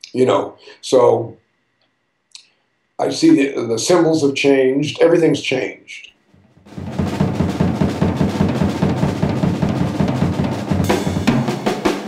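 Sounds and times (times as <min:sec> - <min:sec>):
fast drum kit rolls: 0:06.4 - 0:12.0.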